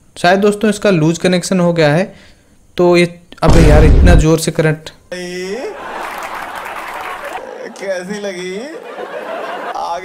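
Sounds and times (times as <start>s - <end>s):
audience applauding: 5.8s - 9.8s.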